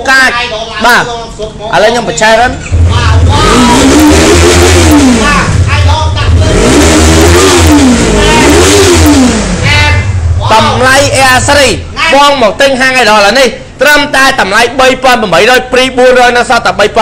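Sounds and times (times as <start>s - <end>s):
motorcycle engine revving: 2.6s - 11.9s.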